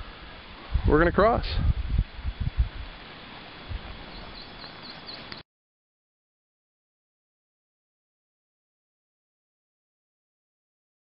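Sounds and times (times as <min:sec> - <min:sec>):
small bird chirping: 0:04.1 - 0:05.4.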